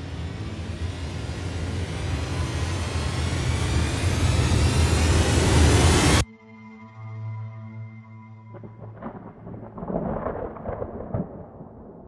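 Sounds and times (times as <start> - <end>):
rushing riser noise: 0.0 - 6.2
deep steady drone: 0.0 - 10.0.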